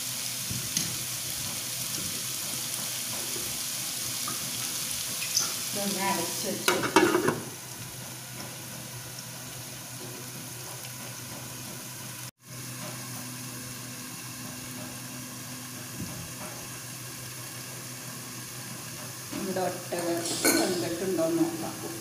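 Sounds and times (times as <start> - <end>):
food sizzling in a frying pan: 0.0 - 22.0.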